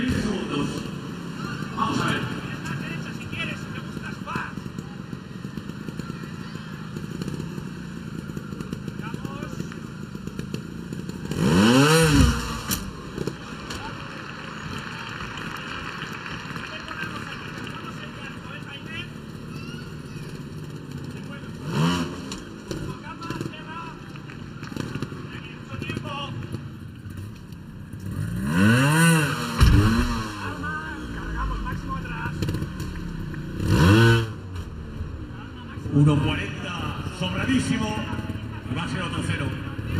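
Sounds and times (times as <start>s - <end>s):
motorcycle engine revving: 0.0s - 39.9s.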